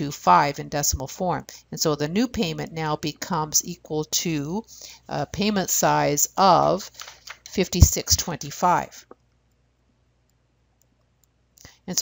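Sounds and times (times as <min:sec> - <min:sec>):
person speaking: 0:00.0 - 0:09.2
person breathing: 0:04.7 - 0:05.1
stylus tapping tablet screen: 0:06.7 - 0:09.6.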